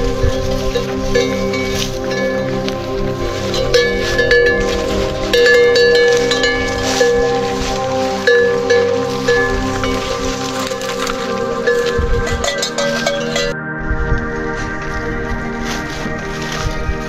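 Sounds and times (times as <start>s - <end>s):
chime-like ringing tones: 0.0s - 17.0s.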